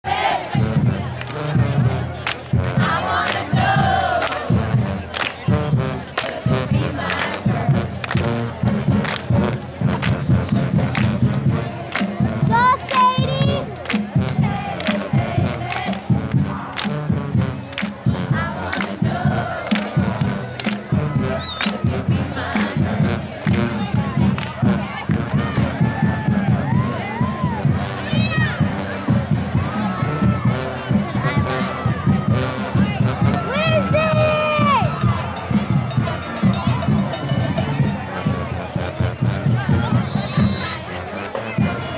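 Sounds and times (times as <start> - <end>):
cheerleaders chanting: 0.0 - 2.1, 2.8 - 5.2, 5.9 - 9.2, 10.9 - 41.9
crowd din: 0.0 - 41.9
sharp hand claps: 9.0 - 9.3, 20.6 - 20.9.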